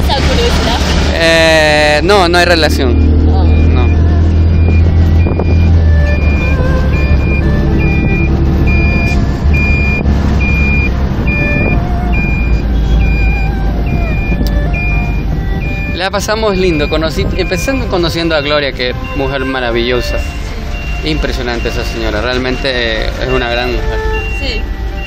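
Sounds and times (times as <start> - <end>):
engine and road rumble: 0.0 - 25.0
music playing: 1.2 - 25.0
high beep: 2.6 - 13.5, 14.1 - 19.6, 24.1 - 25.0.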